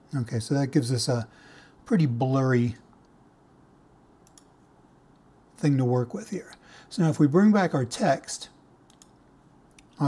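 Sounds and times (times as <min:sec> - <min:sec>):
computer mouse double click: 0:08.9 - 0:09.2.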